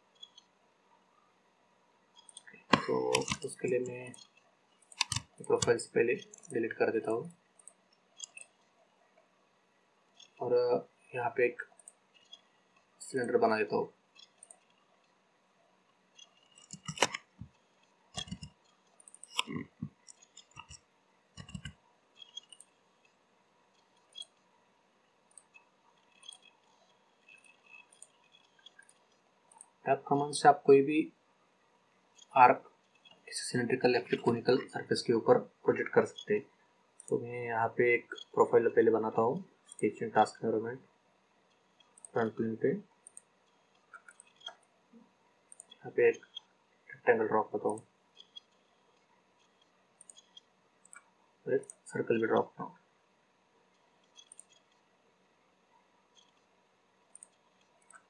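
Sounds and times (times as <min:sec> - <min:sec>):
computer mouse clicks: 0:00.1 - 0:00.5, 0:02.2 - 0:06.6, 0:07.5 - 0:08.7, 0:10.2 - 0:10.4, 0:11.6 - 0:13.3, 0:14.1 - 0:15.2, 0:15.9 - 0:24.5, 0:25.3 - 0:29.8, 0:41.5 - 0:42.4, 0:43.0 - 0:44.7, 0:45.5 - 0:46.5, 0:47.6 - 0:52.0, 0:53.7 - 0:54.9, 0:56.1 - 0:56.5, 0:57.1 - 0:58.0
keyboard keys clicking: 0:02.2 - 0:03.6, 0:04.8 - 0:06.5, 0:16.4 - 0:20.8, 0:21.4 - 0:22.7
mouse buttons clicking: 0:02.2 - 0:06.6, 0:16.2 - 0:20.8, 0:21.4 - 0:22.8
person speaking: 0:02.4 - 0:04.3, 0:04.9 - 0:07.4, 0:10.4 - 0:11.8, 0:13.0 - 0:14.0, 0:19.1 - 0:20.0, 0:29.8 - 0:31.2, 0:33.3 - 0:36.5, 0:37.1 - 0:40.9, 0:42.0 - 0:42.9, 0:46.9 - 0:47.8, 0:51.4 - 0:52.8.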